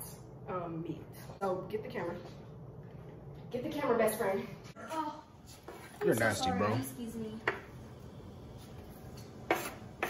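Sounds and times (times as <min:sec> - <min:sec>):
scraping on wooden cutting board: 0:09.4 - 0:10.0.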